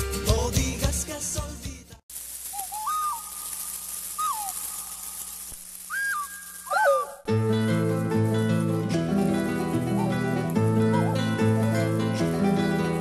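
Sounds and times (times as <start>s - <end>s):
steady high hiss: 2.1s - 13.0s
whistled bird calls: 2.5s - 3.5s, 4.1s - 5.1s, 5.9s - 7.2s
music with plucked notes: 7.3s - 13.0s.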